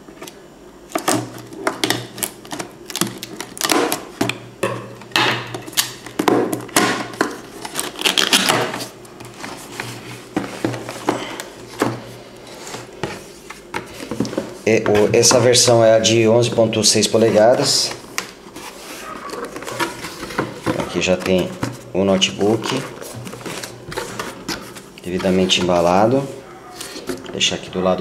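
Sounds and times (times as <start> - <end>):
cardboard scraping: 16.8 - 27.3.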